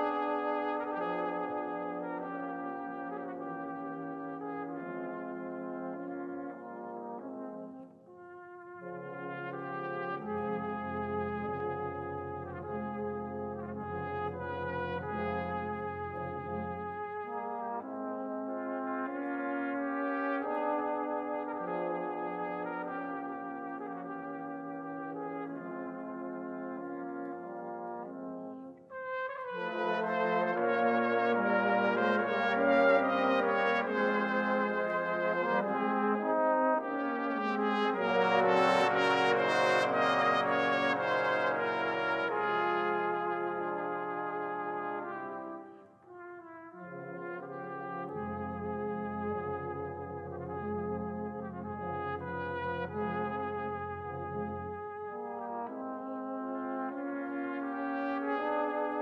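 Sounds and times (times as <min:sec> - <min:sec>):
brass band playing chords: 0:00.0 - 0:59.0.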